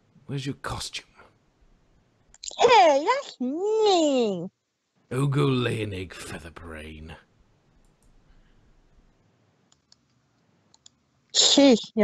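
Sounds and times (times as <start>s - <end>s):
person speaking: 0.3s - 1.2s, 2.4s - 4.4s, 5.1s - 7.2s
soft sharp clicks: 9.7s - 11.0s.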